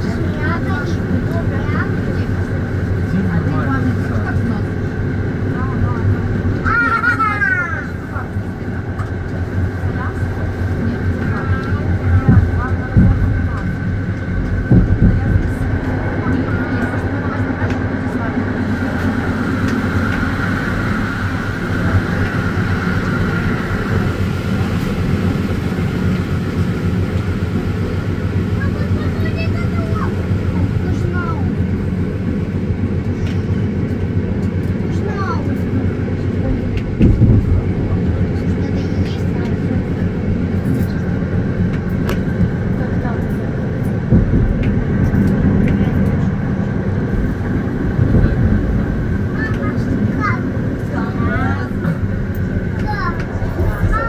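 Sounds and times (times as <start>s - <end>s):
low motor hum: 0.0s - 54.0s
train wheels rumbling on rail: 0.0s - 54.0s.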